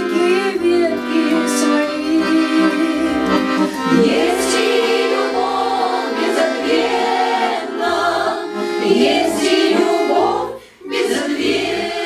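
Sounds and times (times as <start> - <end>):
accordion: 0.0 - 12.0
women's choir singing: 2.4 - 12.0.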